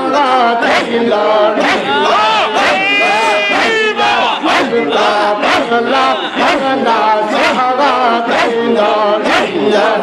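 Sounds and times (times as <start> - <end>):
crowd of men chanting: 0.0 - 10.0.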